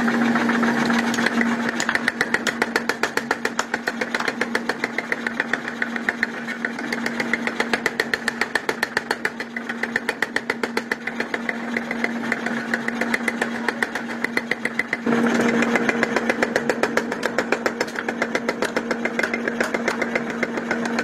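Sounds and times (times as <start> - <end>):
machine motor hum: 0.0 - 21.0
power hammer pounding steel: 0.0 - 21.0.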